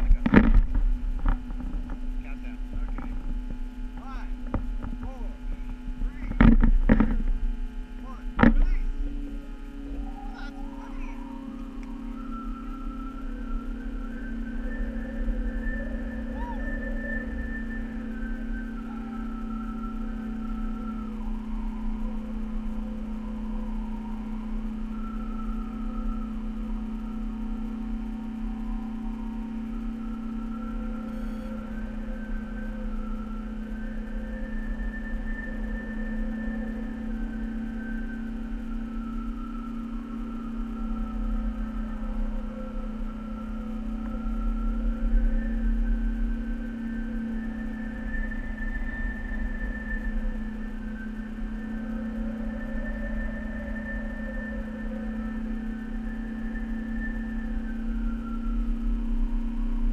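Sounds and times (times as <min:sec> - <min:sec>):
droning hum: 0:00.0 - 0:59.9
low rumble: 0:00.0 - 0:59.9
higher tones shifting in pitch: 0:07.9 - 0:56.0.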